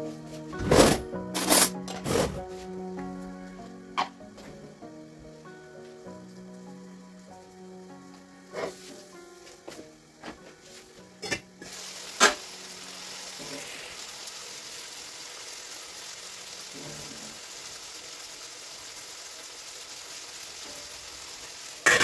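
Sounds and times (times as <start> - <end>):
chicken sizzling in a frying pan: 3.9 - 22.0.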